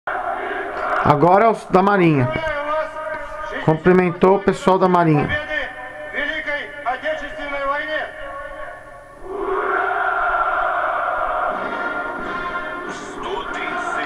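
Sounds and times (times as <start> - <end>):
crowd massed shout: 0.1 - 1.5, 9.2 - 14.0
man speaking over loudspeakers: 1.0 - 8.8, 13.0 - 14.0.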